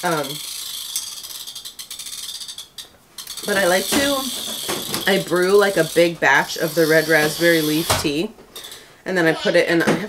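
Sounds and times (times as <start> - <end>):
fast ratchet-like clicking: 0.0 - 7.9.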